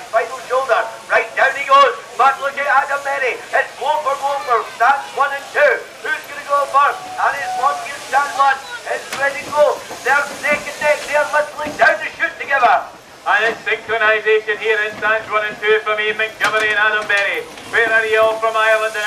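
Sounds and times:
man commentating rapidly: 0:00.0 - 0:19.0.

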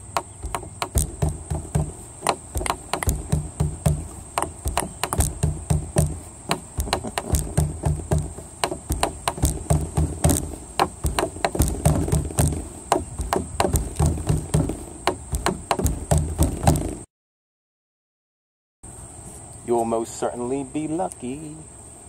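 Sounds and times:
low thuds: 0:00.0 - 0:17.1
rapid knocking and tapping: 0:00.0 - 0:17.1.

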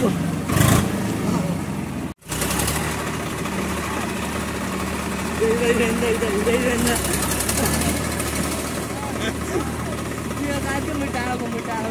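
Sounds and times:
tractor diesel engine running: 0:00.0 - 0:11.9.

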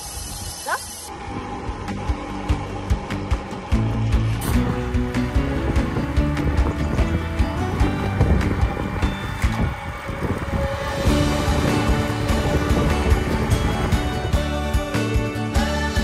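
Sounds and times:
background music with a beat: 0:01.8 - 0:16.0.

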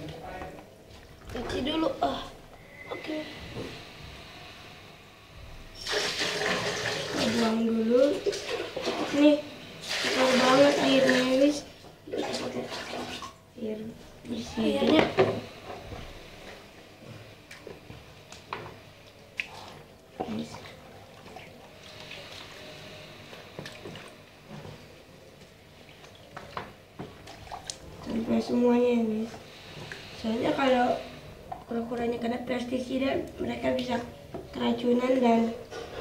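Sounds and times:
water sloshing in a basin: 0:05.7 - 0:32.1.

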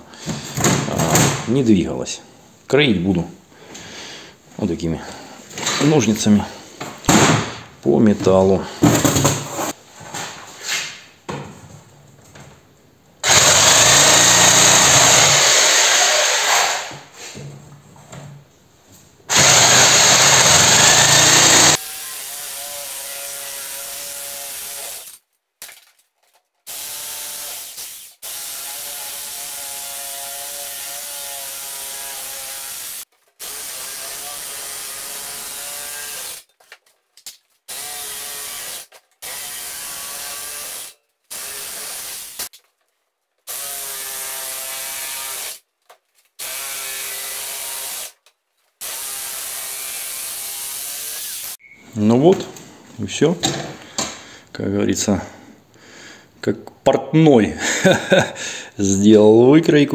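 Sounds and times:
electric shears cutting steel sheet: 0:13.2 - 0:16.9, 0:19.3 - 0:25.2, 0:26.7 - 0:36.5, 0:37.7 - 0:42.5, 0:43.5 - 0:45.6, 0:46.4 - 0:48.2, 0:48.8 - 0:51.6.

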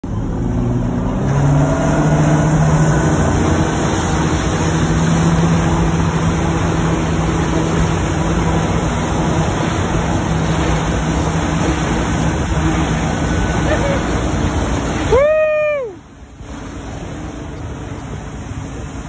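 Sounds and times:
boat engine throttling up: 0:00.0 - 0:19.0
rush of churning wake: 0:00.0 - 0:19.0.

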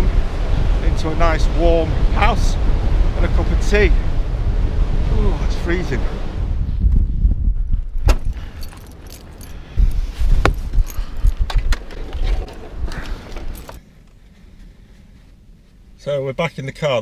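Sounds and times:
wind buffeting microphone: 0:00.0 - 0:13.8
metal keys jangling: 0:08.3 - 0:10.0, 0:10.7 - 0:11.8, 0:13.3 - 0:13.8.

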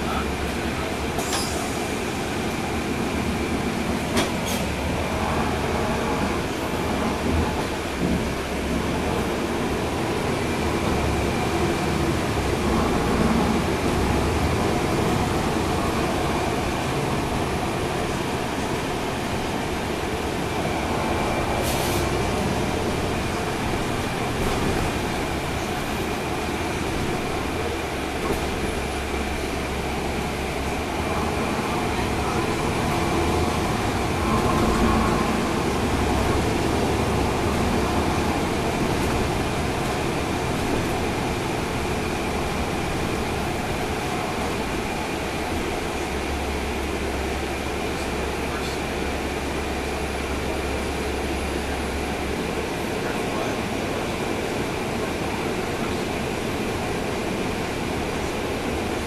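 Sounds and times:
bus diesel engine running: 0:00.0 - 0:59.0
road noise: 0:00.0 - 0:59.0.

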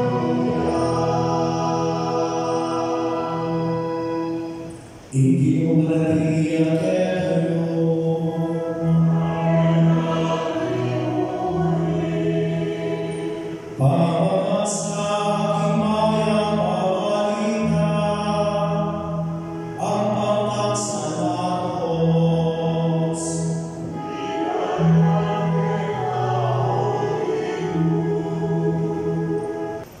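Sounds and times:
mixed choir singing: 0:00.0 - 0:05.4, 0:06.2 - 0:30.0.

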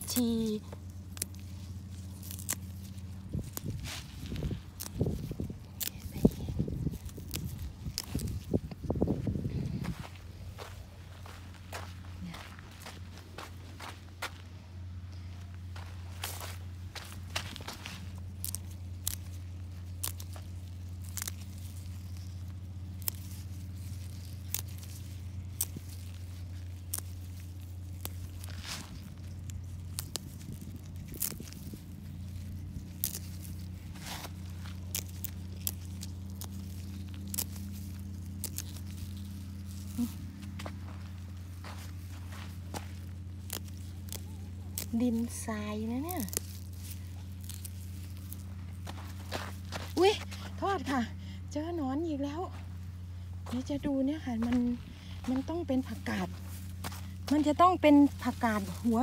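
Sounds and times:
snapping plant stems: 0:00.0 - 0:08.8, 0:16.2 - 0:50.0
footsteps on sandy soil: 0:00.0 - 0:59.0
steady low hum: 0:00.0 - 0:59.0.

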